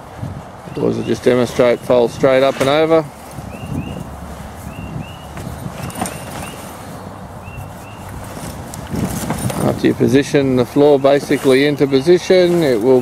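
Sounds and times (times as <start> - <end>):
canvas rustling and flapping: 0.2 - 13.0.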